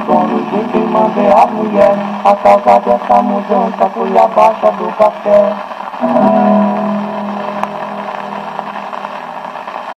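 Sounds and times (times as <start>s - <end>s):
record surface hiss and crackle: 0.0s - 9.9s
viola and guitar chord: 6.0s - 9.6s.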